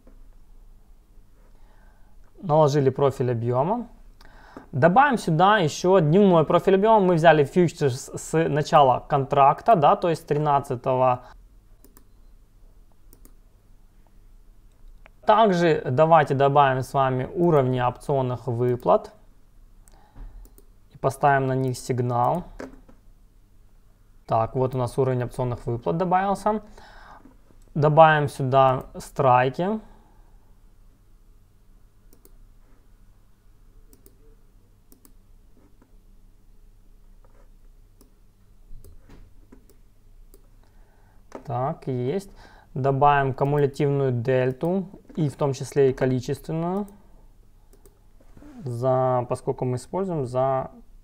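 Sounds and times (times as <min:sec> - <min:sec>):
low room hum: 0:00.0 - 0:51.0
computer mouse clicks: 0:11.8 - 0:12.2, 0:13.1 - 0:13.4, 0:19.9 - 0:20.7, 0:32.1 - 0:32.4, 0:33.9 - 0:34.2, 0:34.9 - 0:35.9, 0:38.0 - 0:38.2, 0:38.8 - 0:40.5, 0:47.7 - 0:48.0
computer mouse button clicks: 0:33.9 - 0:34.2.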